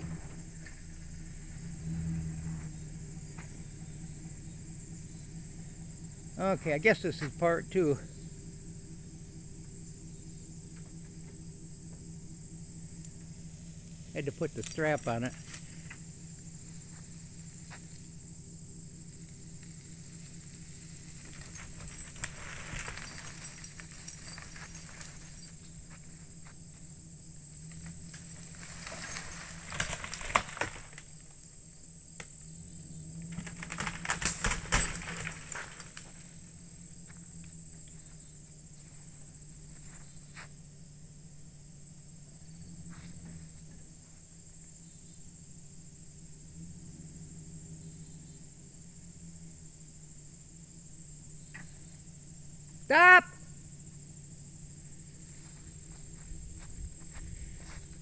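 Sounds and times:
insects trilling: 0.0 - 58.0
truck engine idling: 0.0 - 58.0
rustling with clicks: 20.2 - 26.2, 27.7 - 31.4, 33.3 - 36.3.

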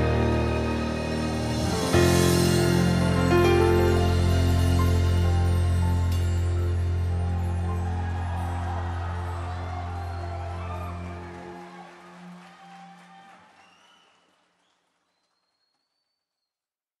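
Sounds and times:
audience clapping: 7.1 - 16.0.

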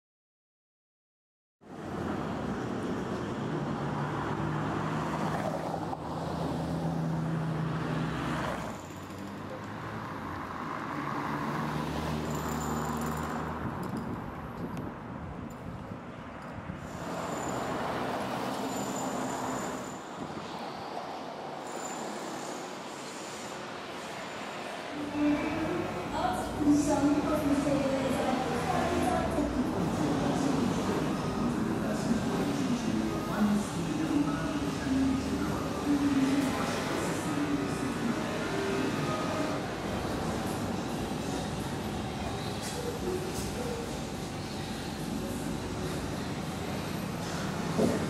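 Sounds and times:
vehicle engines passing: 1.7 - 48.0.

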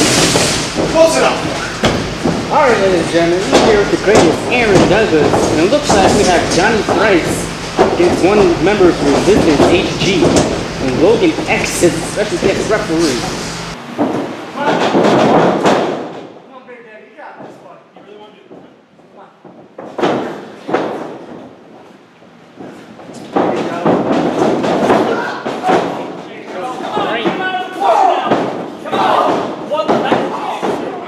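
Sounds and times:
bodies slamming onto ring mat: 0.2 - 10.6
people shouting: 24.9 - 31.0.

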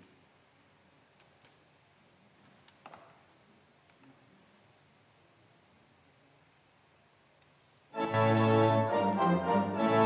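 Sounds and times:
pipe organ playing chords: 8.0 - 10.0.

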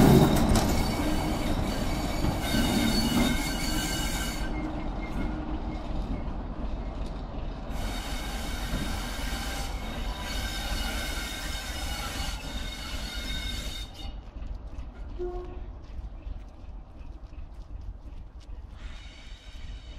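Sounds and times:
diesel locomotive engine: 0.0 - 19.9
wheel squeal: 0.1 - 5.9, 7.7 - 14.2.

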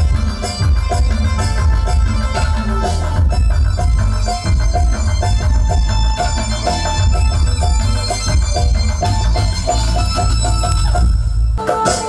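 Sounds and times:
loud dance music: 0.0 - 12.0.

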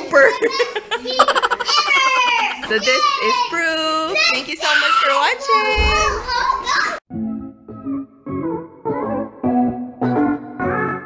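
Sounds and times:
excited voices and laughter: 0.0 - 6.7.

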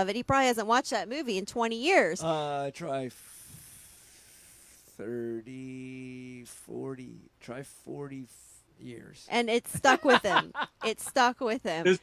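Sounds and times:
faint high-pitched hiss: 2.3 - 11.0.

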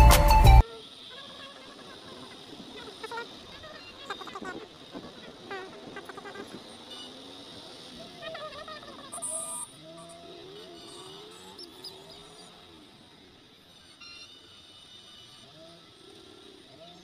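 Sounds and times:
road traffic: 0.0 - 16.7.

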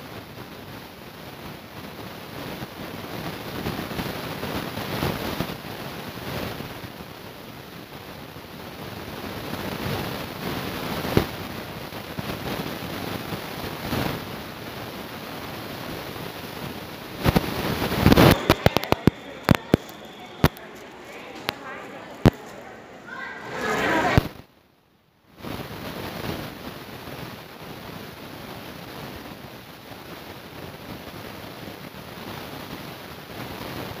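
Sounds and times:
shopping mall hubbub: 0.9 - 24.4.

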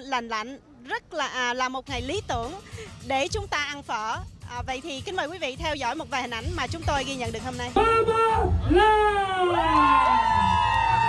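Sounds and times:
people cheering with long shouts: 7.8 - 11.0.

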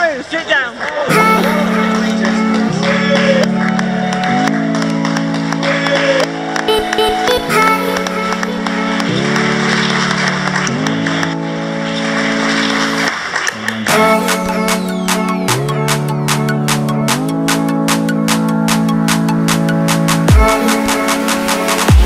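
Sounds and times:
clapping: 0.0 - 20.4
song with held chords: 1.1 - 22.0.

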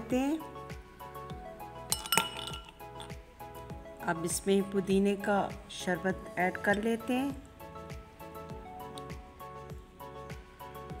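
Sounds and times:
background music with steady beat: 0.0 - 11.0
ice cubes clinking against glass: 1.9 - 3.2.

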